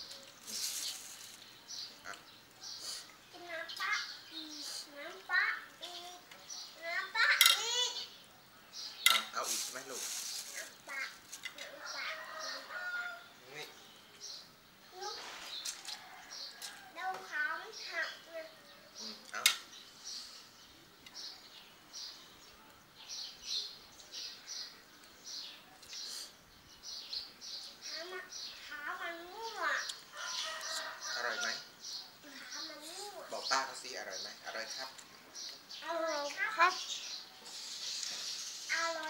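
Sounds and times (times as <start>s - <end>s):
birds chirping: 0.0s - 39.0s.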